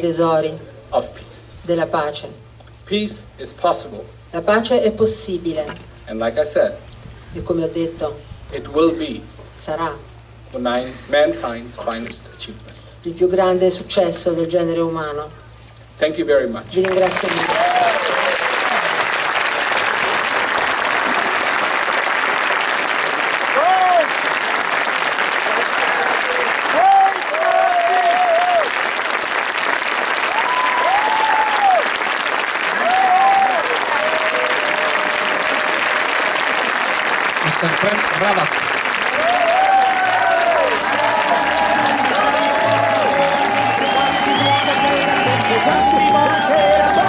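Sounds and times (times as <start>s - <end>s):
audience applauding: 16.8s - 47.0s
music: 41.4s - 47.0s.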